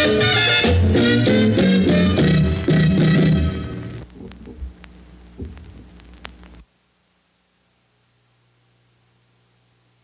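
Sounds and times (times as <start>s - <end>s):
low steady hum: 2.5s - 10.0s
soft low thumps: 4.1s - 6.6s.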